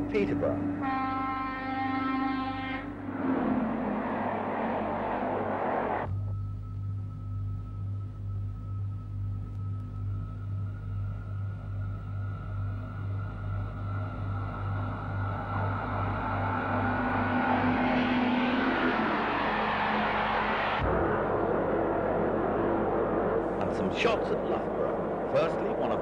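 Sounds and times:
noisy train sound: 0:00.0 - 0:06.1, 0:11.5 - 0:26.0
diesel locomotive engine drone: 0:00.0 - 0:26.0.

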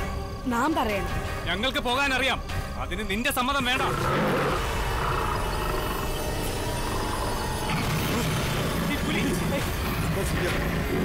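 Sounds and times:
background music: 0:00.0 - 0:11.0
tiger growling and roaring: 0:03.7 - 0:11.0.

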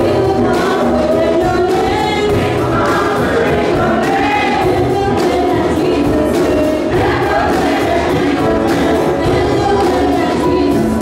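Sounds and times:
accompanying music: 0:00.0 - 0:11.0
choir singing gospel: 0:00.0 - 0:11.0.

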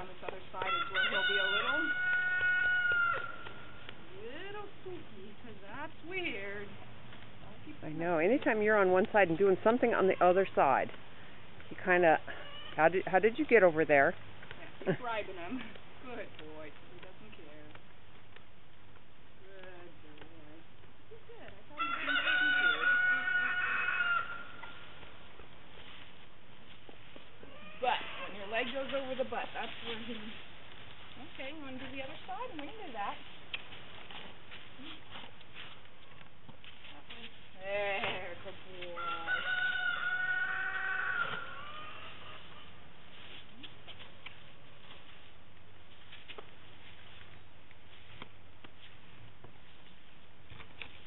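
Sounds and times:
rooster crowing: 0:00.6 - 0:03.5, 0:21.8 - 0:24.6, 0:39.0 - 0:42.7
long animal call: 0:39.0 - 0:42.8.

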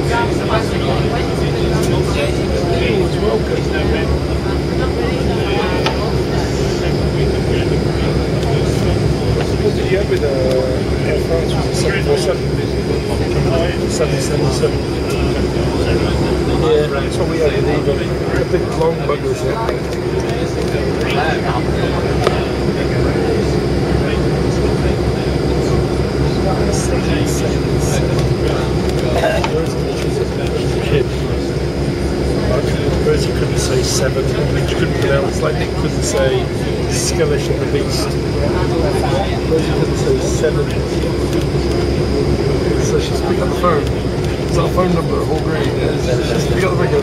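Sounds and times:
high-pitched whine: 0:00.0 - 0:47.0
low pulsing hum: 0:00.0 - 0:47.0
vehicle engine rumble: 0:00.0 - 0:47.0
voices murmuring: 0:00.0 - 0:47.0.

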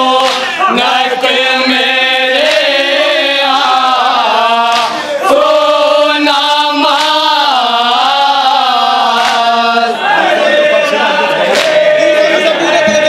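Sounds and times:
men chanting in unison: 0:00.0 - 0:13.0.

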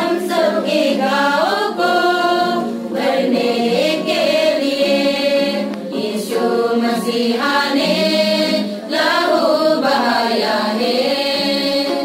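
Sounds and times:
women's choir singing a hymn: 0:00.0 - 0:12.0.

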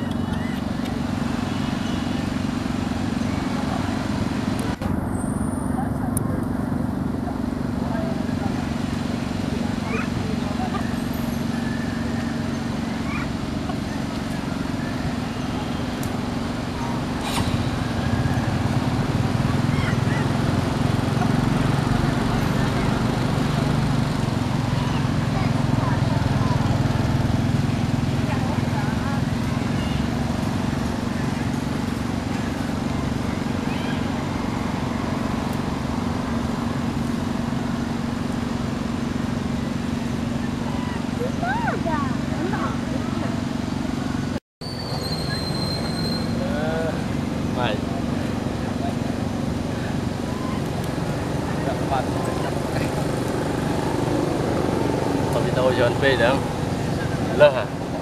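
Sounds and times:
people talking: 0:03.2 - 0:04.8, 0:05.5 - 0:34.6, 0:40.2 - 0:44.2, 0:45.2 - 0:58.0
faint short squeaks: 0:44.6 - 0:46.4.

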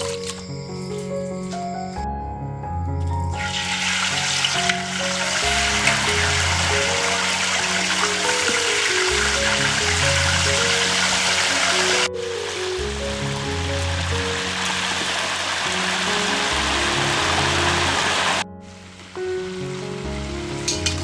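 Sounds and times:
background music: 0:00.0 - 0:21.0
crabs sizzling in hot oil: 0:03.3 - 0:21.0.

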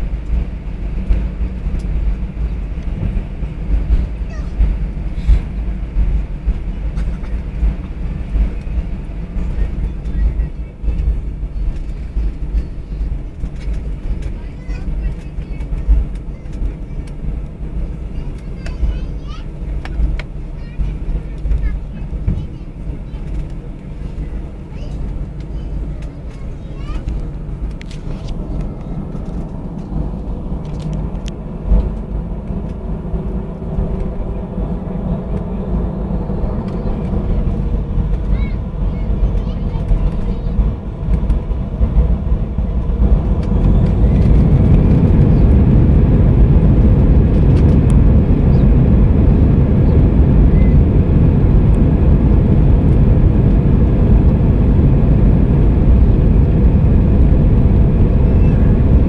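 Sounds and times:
jet engines rumbling: 0:00.0 - 0:59.0.

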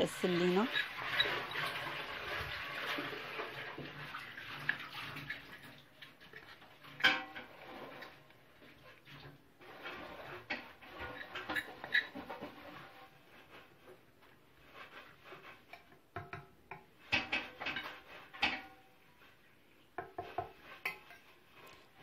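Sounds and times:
metal spoon scraping a saucepan: 0:00.1 - 0:14.0, 0:14.6 - 0:19.4, 0:20.0 - 0:22.0.

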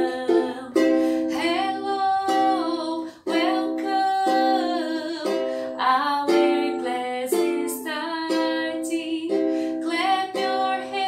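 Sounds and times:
ukulele strumming: 0:00.0 - 0:11.0
woman singing: 0:00.0 - 0:11.0.

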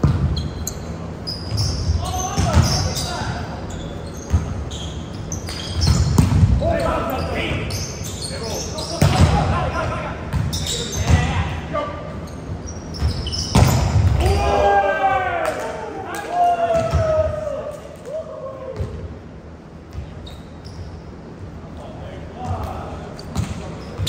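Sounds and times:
sneakers squeaking: 0:00.0 - 0:14.6, 0:16.7 - 0:17.5, 0:18.6 - 0:24.0
players shouting: 0:14.1 - 0:19.0.

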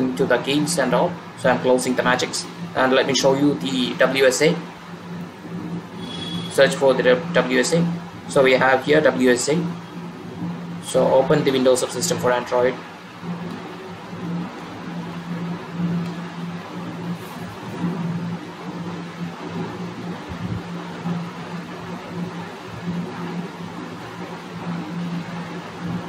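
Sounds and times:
mechanical hum: 0:00.0 - 0:26.0.

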